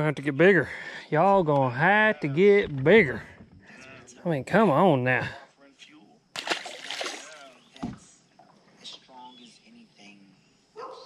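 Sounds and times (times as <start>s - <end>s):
fish splashing into lake: 6.4s - 7.6s.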